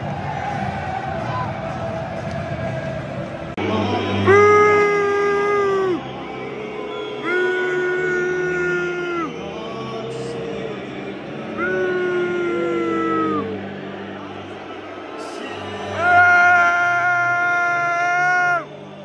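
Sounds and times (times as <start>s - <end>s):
stadium crowd din: 0.0s - 19.0s.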